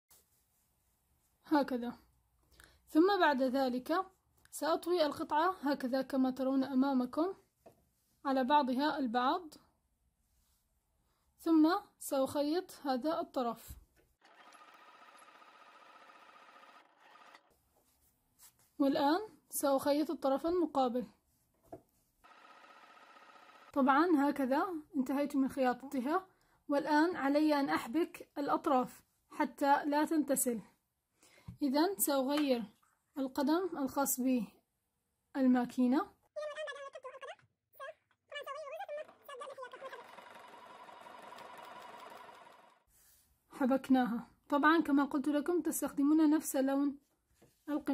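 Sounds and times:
sewing machine stitching: 0:14.2 - 0:17.6, 0:22.2 - 0:23.8, 0:39.0 - 0:42.9.

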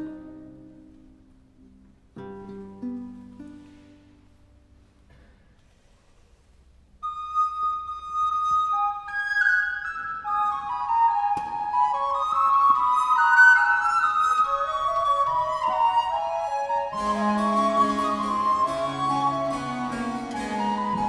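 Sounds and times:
recorders playing a duet: 0:14.5 - 0:21.0.

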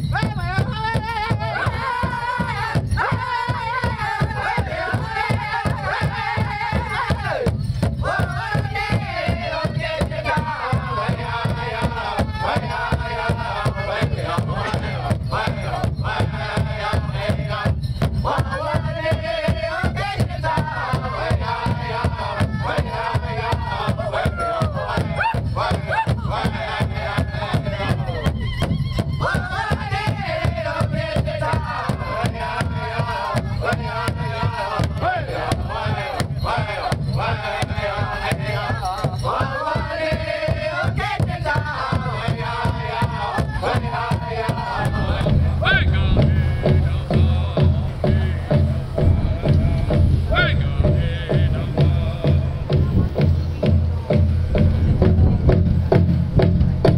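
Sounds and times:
drum group singing: 0:00.0 - 0:56.9
steady drum beat: 0:00.0 - 0:56.9
low pulsing sound: 0:43.4 - 0:56.9.

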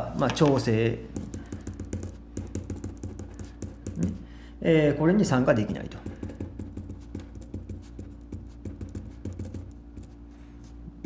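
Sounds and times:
pen writing on paper: 0:01.2 - 0:04.2, 0:06.3 - 0:10.2.

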